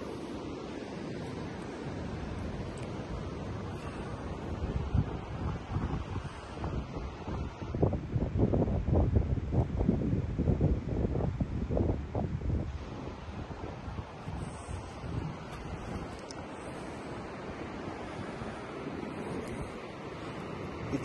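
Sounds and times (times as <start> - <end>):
ocean surf: 0.0 - 21.0
wind buffeting microphone: 0.0 - 21.0.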